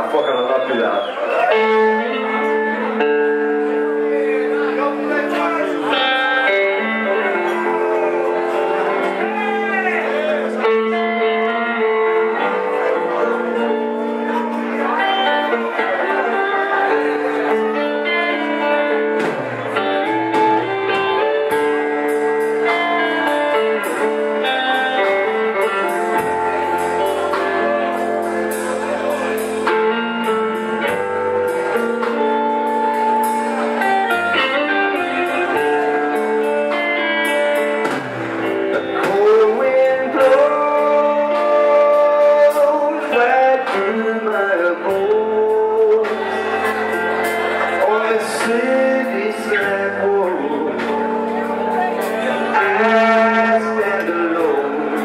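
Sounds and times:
blues-rock band playing: 0:00.0 - 0:55.0
electric guitar sustained notes: 0:00.0 - 0:55.0
bass guitar: 0:01.0 - 0:55.0.

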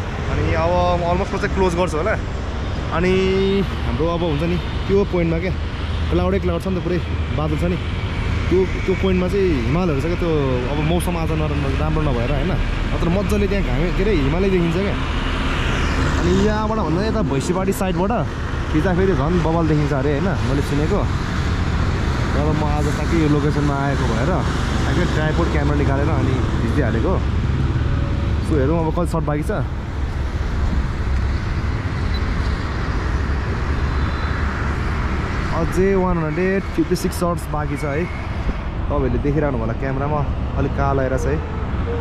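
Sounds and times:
road traffic rumble: 0:00.0 - 0:42.0.

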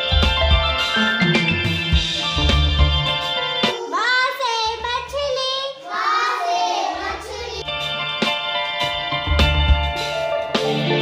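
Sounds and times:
backing track with bass: 0:00.0 - 0:03.8, 0:07.6 - 0:11.0
child singing: 0:03.8 - 0:07.6.

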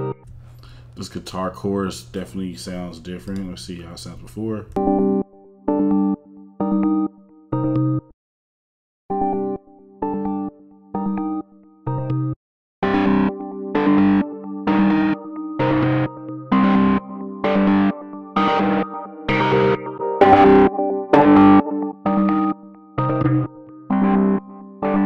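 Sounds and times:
synth chord stabs: 0:12.8 - 0:25.0.

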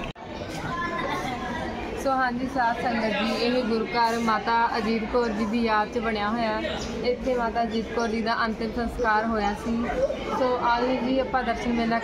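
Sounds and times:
background chatter of voices: 0:00.0 - 0:12.0.

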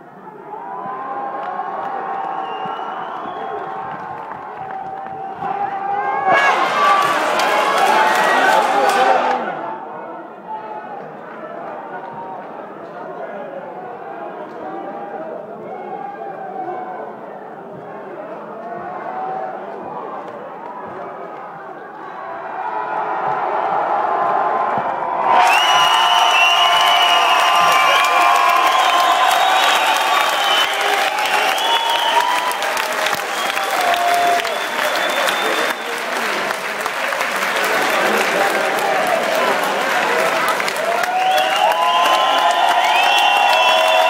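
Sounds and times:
crowd cheering and applauding: 0:00.6 - 0:09.8, 0:22.5 - 0:44.0.

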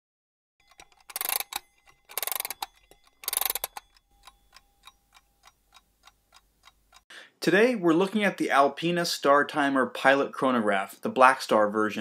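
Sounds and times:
clock ticking: 0:00.6 - 0:07.1.

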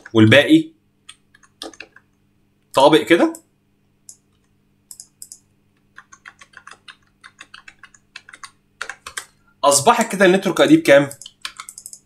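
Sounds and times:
keyboard typing: 0:01.0 - 0:02.2, 0:04.0 - 0:09.4, 0:11.0 - 0:12.0.

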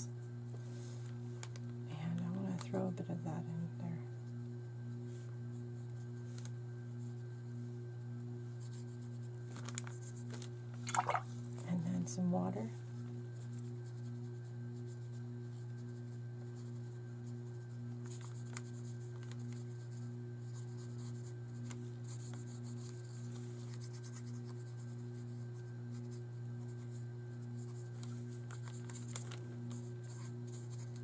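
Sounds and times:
low pulsing hum: 0:00.0 - 0:31.0.

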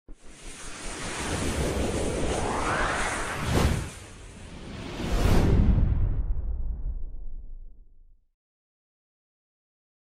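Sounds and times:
rushing noise sound effect: 0:00.1 - 0:07.5.

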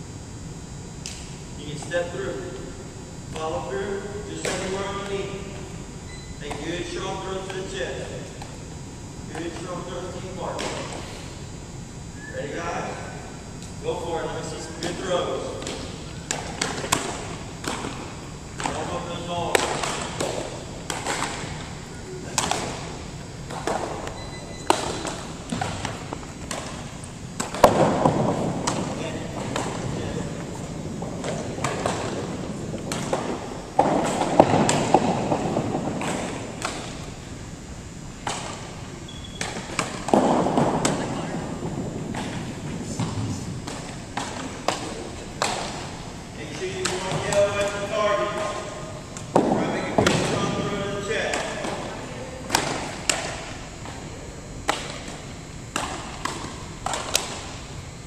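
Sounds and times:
balls hitting wooden floor: 0:14.8 - 0:21.6, 0:22.3 - 0:37.2, 0:38.2 - 0:54.0, 0:54.6 - 0:57.5.

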